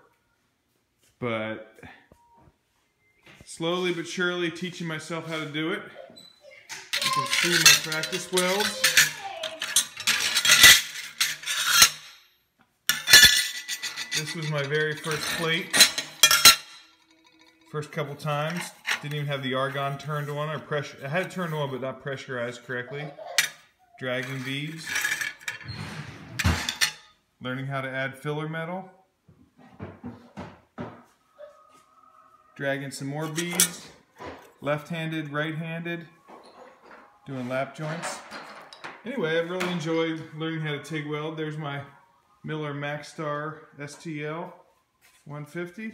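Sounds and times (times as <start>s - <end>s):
metal plates clinking and scraping: 6.7s - 12.3s, 12.9s - 21.7s, 23.3s - 27.1s, 33.2s - 34.6s, 36.3s - 39.1s.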